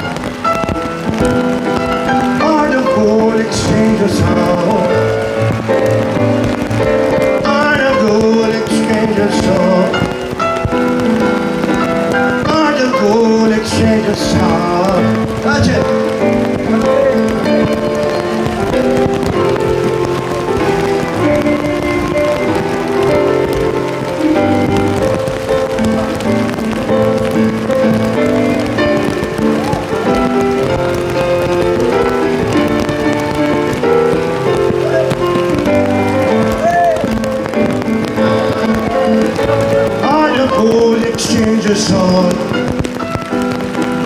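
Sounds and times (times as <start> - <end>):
live reggae band playing: 0.0 - 44.0.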